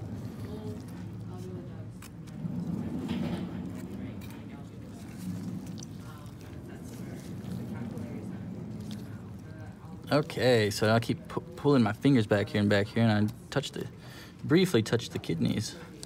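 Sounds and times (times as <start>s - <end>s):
low voice-like murmur: 0.0s - 10.4s.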